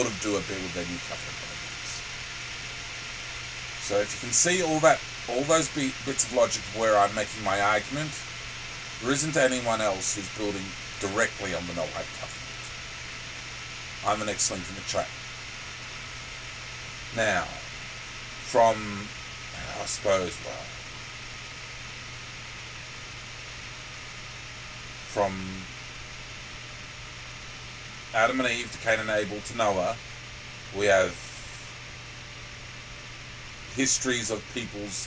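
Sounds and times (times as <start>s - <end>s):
low hum: 0.0s - 35.0s
steady hiss: 0.0s - 35.0s.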